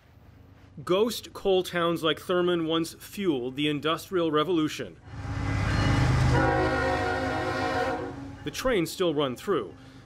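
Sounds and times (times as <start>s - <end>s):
diesel locomotive rumbling: 5.0s - 8.8s
locomotive air horn chord: 5.1s - 8.4s.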